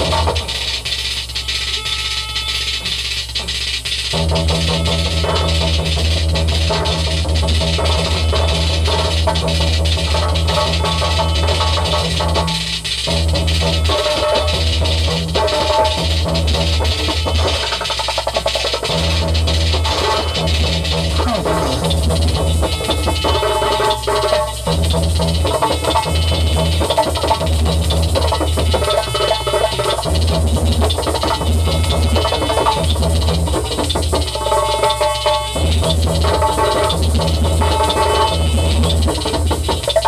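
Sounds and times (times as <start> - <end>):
electronic music with heavy bass: 0.0 - 40.0.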